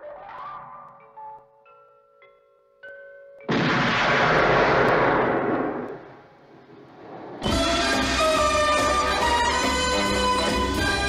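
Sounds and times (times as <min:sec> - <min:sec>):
gunshot: 0:03.5 - 0:06.1.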